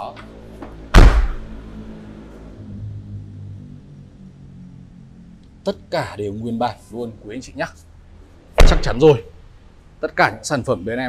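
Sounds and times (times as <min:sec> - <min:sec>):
soft background music: 0:00.0 - 0:11.0
car tailgate slamming shut: 0:00.9 - 0:01.5, 0:08.6 - 0:09.0.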